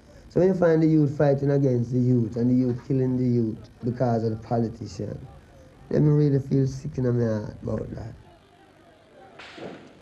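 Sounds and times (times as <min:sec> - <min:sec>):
sharp gunshot crack: 0:09.4 - 0:10.0.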